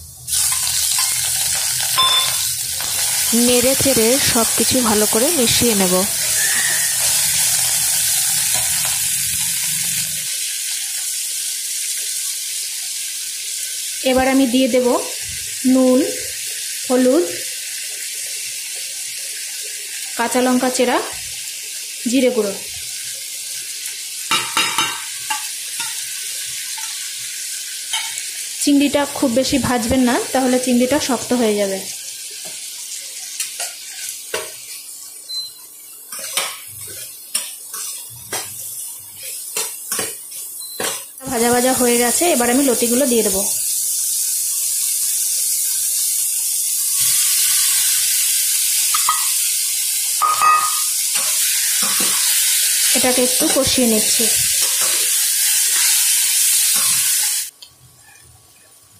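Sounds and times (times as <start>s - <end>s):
prawns sizzling in hot oil: 0.0s - 58.9s
steel spatula scraping a pan: 6.0s - 9.0s.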